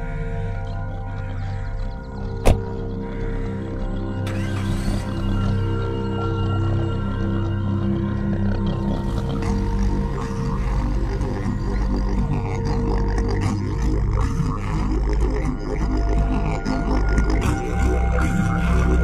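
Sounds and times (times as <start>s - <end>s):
deep drone film score: 0.0s - 19.0s.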